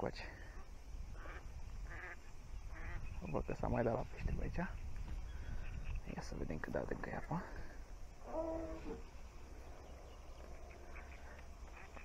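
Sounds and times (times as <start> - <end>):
short animal calls: 8.2 - 9.1.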